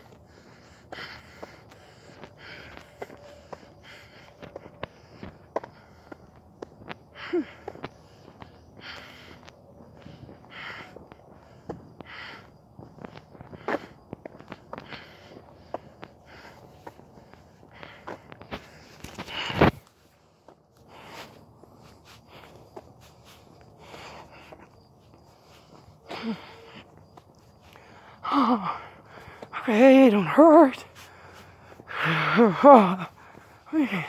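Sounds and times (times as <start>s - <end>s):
footsteps walking: 0.0s - 28.0s.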